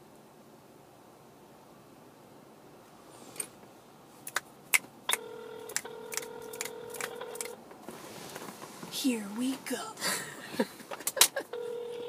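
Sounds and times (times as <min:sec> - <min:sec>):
electronic call tone: 0:05.1 - 0:07.5, 0:11.4 - 0:12.0
phone dialing clicks: 0:05.1 - 0:07.6, 0:11.0 - 0:12.0.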